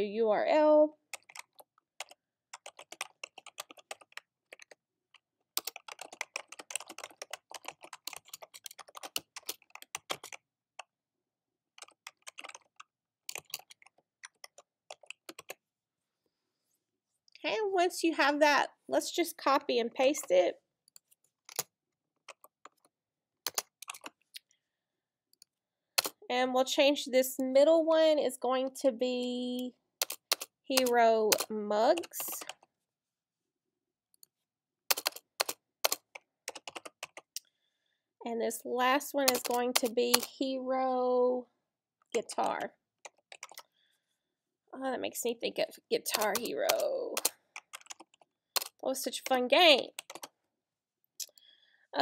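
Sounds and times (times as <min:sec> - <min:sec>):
computer keystrokes: 0:01.1 - 0:04.8, 0:05.6 - 0:10.4, 0:11.8 - 0:15.6, 0:23.5 - 0:24.2, 0:30.0 - 0:32.6, 0:34.9 - 0:37.4, 0:39.2 - 0:40.3, 0:43.1 - 0:43.7, 0:46.1 - 0:48.8, 0:49.9 - 0:50.3
computer keyboard key clicks: 0:39.3 - 0:40.3.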